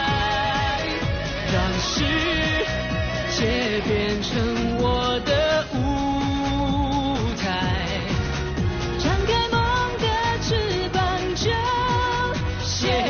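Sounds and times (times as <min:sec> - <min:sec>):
band playing: 0:00.0 - 0:12.3
drum beat: 0:00.0 - 0:13.0
man singing pop song: 0:00.0 - 0:13.0.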